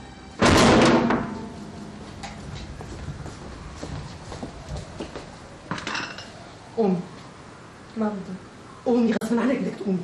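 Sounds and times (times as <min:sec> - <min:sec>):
tableware clattering: 0:05.7 - 0:06.3.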